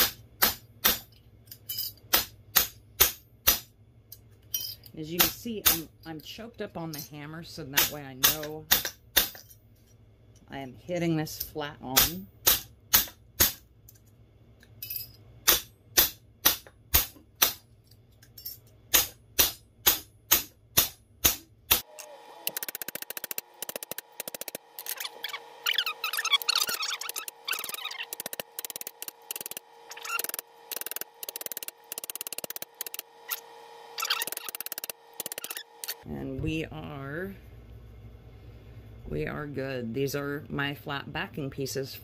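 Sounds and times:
hammer striking metal: 14.9s - 17.6s, 18.9s - 21.8s.

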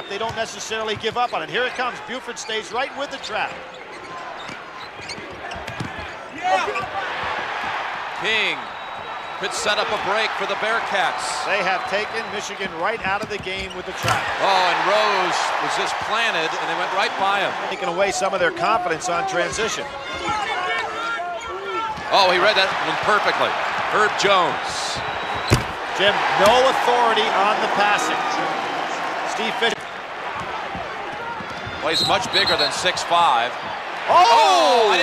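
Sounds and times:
arena crowd noise: 0.0s - 35.0s.

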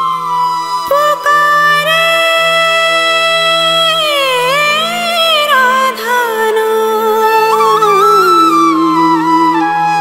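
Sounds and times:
devotional music lead melody: 0.0s - 10.0s.

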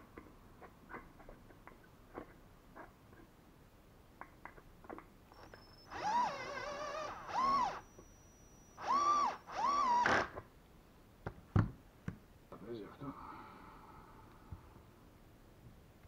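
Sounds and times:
cordless drill driving a screw: 5.4s - 10.4s.

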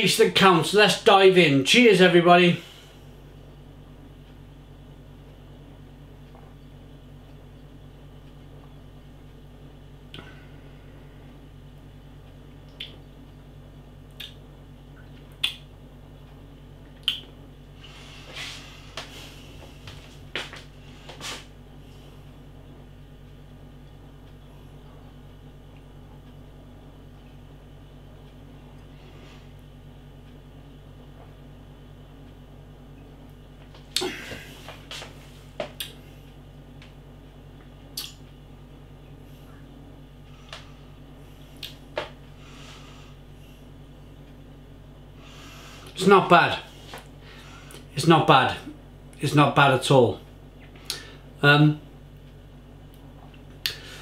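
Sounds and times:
low room hum: 0.0s - 54.0s
breathing: 2.6s - 3.1s, 10.2s - 11.3s, 29.0s - 29.6s, 40.2s - 41.6s, 42.3s - 43.7s, 45.2s - 46.0s, 46.7s - 47.9s, 50.8s - 51.3s, 53.7s - 54.0s
lip smacks and mouth sounds: 12.7s - 13.0s, 14.1s - 14.4s, 15.0s - 15.7s, 16.8s - 17.3s, 35.7s - 36.0s, 37.9s - 38.3s, 41.6s - 41.8s
tongue clicks: 12.7s - 13.0s, 14.1s - 14.4s, 15.0s - 15.7s, 17.0s - 17.3s, 37.9s - 38.3s
wet lip smacks: 15.4s - 15.6s, 17.0s - 17.3s, 38.0s - 38.2s.

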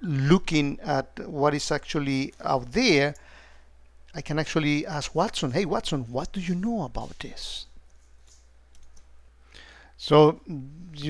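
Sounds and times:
low steady hum: 0.0s - 11.0s
faint clicks: 7.9s - 9.1s.

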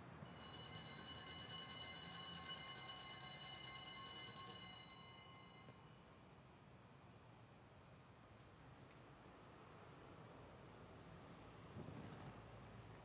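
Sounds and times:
altar bells ringing: 0.2s - 6.3s.

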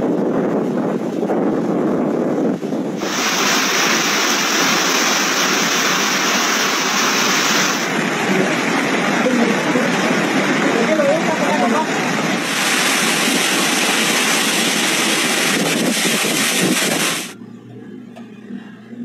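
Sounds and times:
wind buffeting microphone: 0.0s - 17.4s
rushing water: 2.9s - 17.4s.

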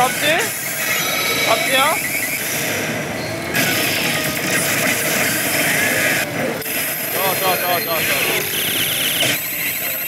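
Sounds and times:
pachinko parlour din: 3.5s - 8.7s.

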